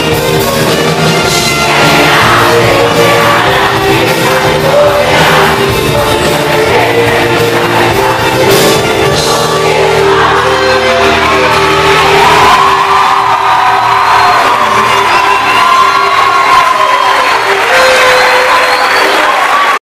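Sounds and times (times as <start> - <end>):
rock band sustained chord: 0.0 - 15.4
crowd cheering and whooping: 0.7 - 5.7, 9.4 - 19.8.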